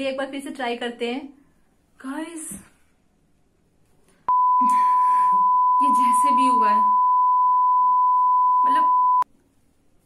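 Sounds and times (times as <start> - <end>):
loud electronic beep tone: 4.3 - 9.2.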